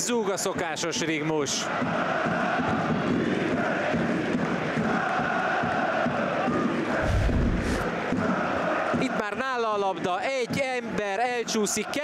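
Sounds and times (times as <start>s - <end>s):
football crowd chanting: 1.7s - 9.1s
low rumble: 7.0s - 7.9s.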